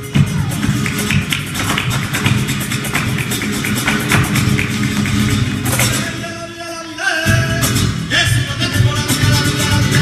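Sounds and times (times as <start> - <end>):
fast percussive strikes: 0.0 - 6.2
acoustic guitars strumming: 0.0 - 10.0.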